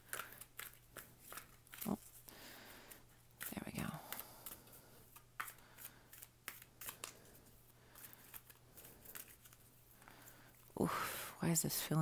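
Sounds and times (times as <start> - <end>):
cards being shuffled: 0.0 - 10.6.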